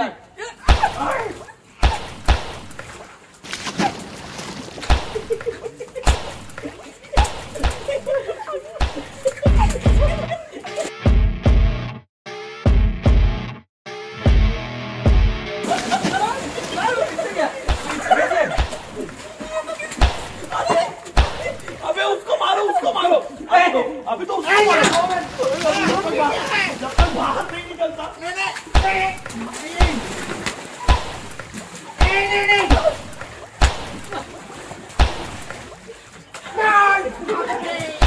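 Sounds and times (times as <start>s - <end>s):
people shouting and chattering: 0.0s - 2.8s, 4.9s - 10.9s, 15.6s - 38.0s
sharp thuds: 0.7s - 4.0s, 4.8s - 10.1s, 17.7s - 19.3s, 20.0s - 21.8s, 27.0s - 27.6s, 28.7s - 34.3s, 35.0s - 35.8s
dull thumps: 4.8s - 10.2s, 17.7s - 19.3s, 20.0s - 21.8s, 27.0s - 27.7s, 28.7s - 34.3s, 35.0s - 35.8s.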